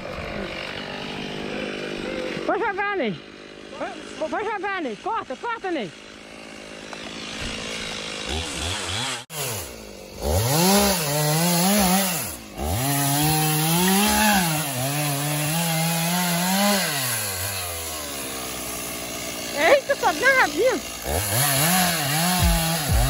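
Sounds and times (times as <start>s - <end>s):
chainsaw cutting tree trunk: 0.0s - 23.0s.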